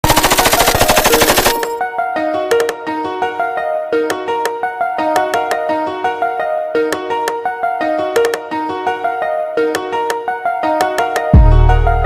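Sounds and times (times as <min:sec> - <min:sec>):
machine-gun fire burst: 0:00.0 - 0:01.7.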